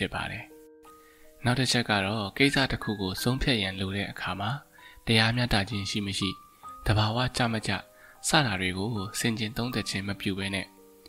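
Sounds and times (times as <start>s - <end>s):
man reading aloud: 0.0s - 0.6s, 1.4s - 10.7s
soft background music: 0.0s - 11.0s.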